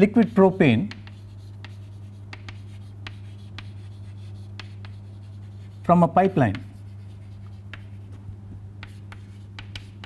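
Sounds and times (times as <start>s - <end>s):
chalk scratching on chalkboard: 0.8s - 8.2s, 8.8s - 10.0s.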